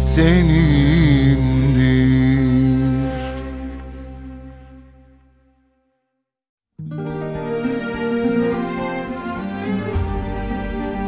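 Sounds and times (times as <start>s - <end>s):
man singing long note: 0.0s - 4.2s
sustained backing chords: 0.0s - 5.6s, 7.1s - 11.0s.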